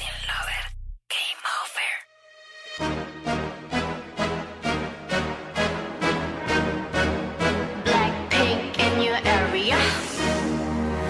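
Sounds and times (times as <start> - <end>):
person whispering: 0.0 - 2.1.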